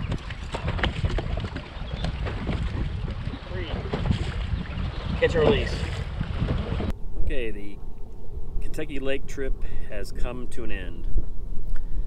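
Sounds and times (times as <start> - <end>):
water slapping boat hull: 0.0 - 7.0
wind buffeting microphone: 0.0 - 12.0.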